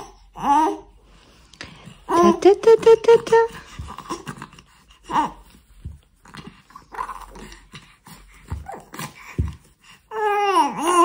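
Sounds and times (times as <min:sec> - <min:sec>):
baby grunting and squealing: 0:06.4 - 0:07.8, 0:10.1 - 0:11.0.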